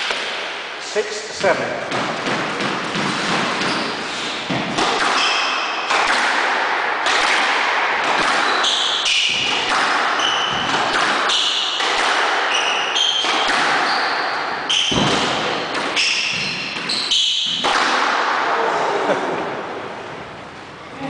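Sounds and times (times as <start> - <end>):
squash ball hitting rackets and walls: 0.0 - 0.8, 1.4 - 18.7
shoes squeaking on wooden floor: 1.3 - 5.5, 8.4 - 11.6, 12.5 - 17.6.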